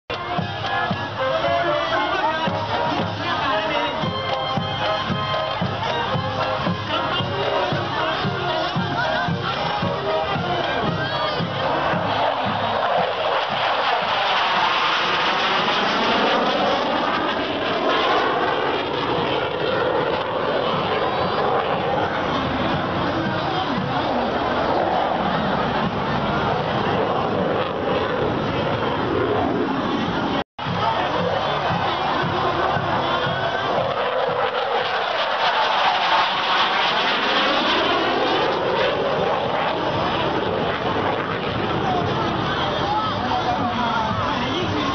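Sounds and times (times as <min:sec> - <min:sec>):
marching band drums: 0:00.1 - 0:17.6, 0:20.7 - 0:24.5, 0:30.6 - 0:35.4
crowd voices: 0:00.1 - 0:44.9
jet flying past overhead: 0:00.1 - 0:44.9.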